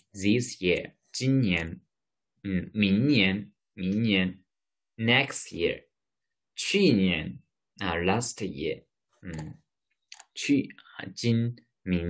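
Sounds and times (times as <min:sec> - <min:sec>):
man speaking: 0:00.0 - 0:05.9, 0:06.6 - 0:12.0.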